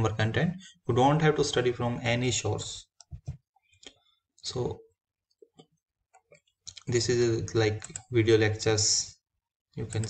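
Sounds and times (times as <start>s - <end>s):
computer mouse clicks: 7.7s - 8.1s.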